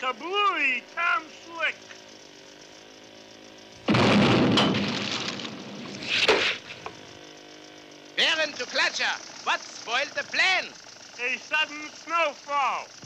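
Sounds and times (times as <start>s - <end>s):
cartoon explosion blast: 3.8s - 6.5s
short crash: 3.9s - 6.9s.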